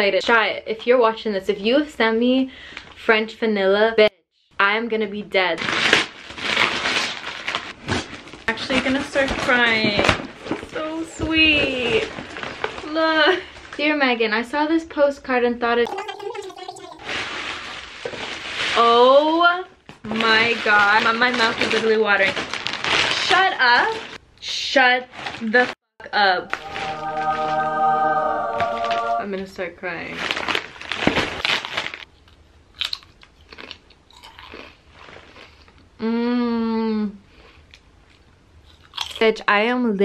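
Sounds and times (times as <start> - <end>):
tissue paper rustling: 20.5 - 24.2
potato chips crunched and chewed: 31.4 - 35.7, 38.1 - 39.2.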